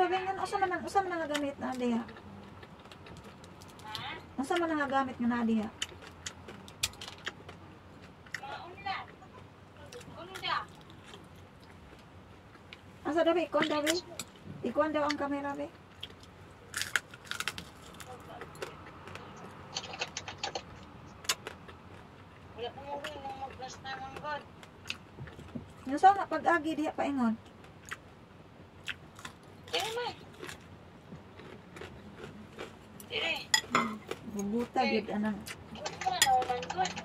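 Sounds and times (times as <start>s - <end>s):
chopsticks clinking against bowl: 33.5s - 34.0s, 35.8s - 37.0s.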